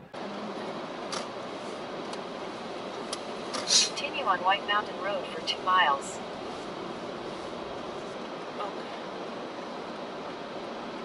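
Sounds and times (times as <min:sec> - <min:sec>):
car cabin engine and road noise: 0:00.0 - 0:11.0.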